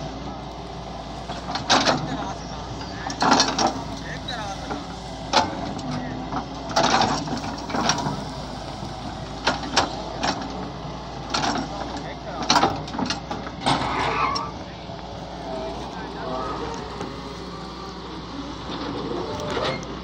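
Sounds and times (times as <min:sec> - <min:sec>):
excavator engine running: 0:00.0 - 0:20.0.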